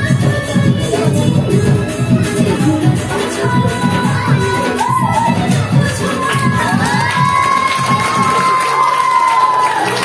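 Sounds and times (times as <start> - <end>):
folk song with drum beat: 0.0 - 8.5
children cheering and shouting: 4.3 - 10.0
long whoop: 7.0 - 10.0.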